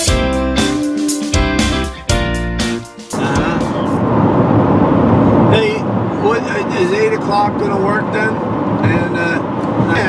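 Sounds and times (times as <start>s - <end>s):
car road and engine rumble: 2.1s - 10.0s
person speaking: 3.1s - 4.0s.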